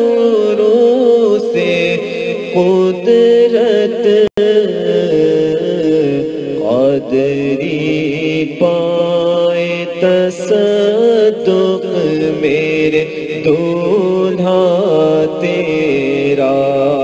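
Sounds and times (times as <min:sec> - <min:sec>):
devotional song with held notes: 0:00.0 - 0:17.0.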